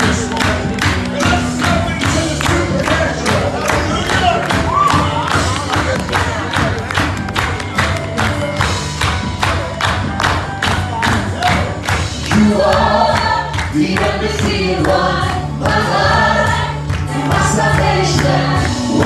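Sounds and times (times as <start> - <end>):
band playing driving beat: 0.0 - 19.0
singer and choir singing: 12.2 - 19.0.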